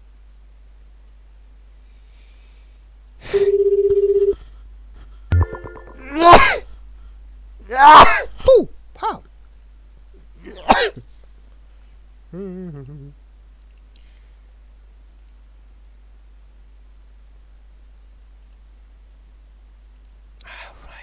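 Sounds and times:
buzzing call tone: 3.4s - 4.4s.

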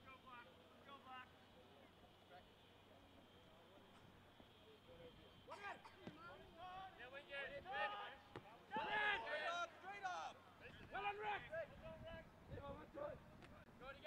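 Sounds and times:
distant players shouting: 5.3s - 11.6s.

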